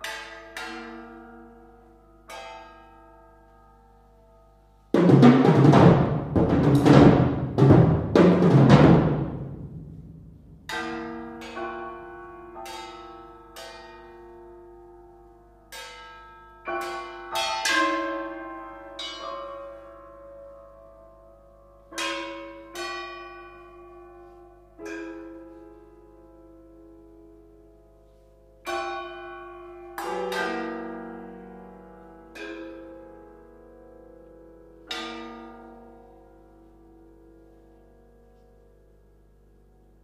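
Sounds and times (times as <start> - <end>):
struck piano and percussion notes: 4.7 - 36.9.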